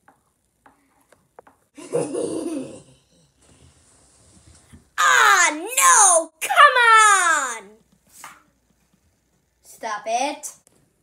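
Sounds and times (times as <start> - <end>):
boy speaking: 5.0 - 7.8, 9.7 - 10.6.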